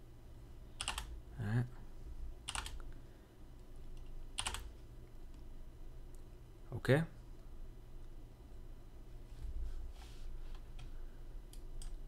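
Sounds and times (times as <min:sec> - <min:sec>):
low steady hum: 0:00.0 - 0:12.0
keyboard keys clicking: 0:00.8 - 0:01.1, 0:02.5 - 0:02.8, 0:04.0 - 0:04.7.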